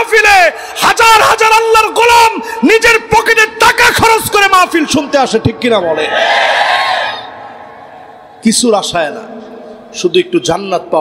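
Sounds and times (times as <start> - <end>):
audience shouting together: 5.9 - 8.2.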